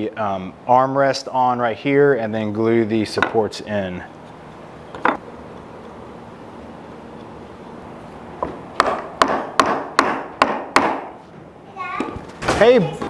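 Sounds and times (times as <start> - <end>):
sharp wooden knocks: 8.4 - 11.2.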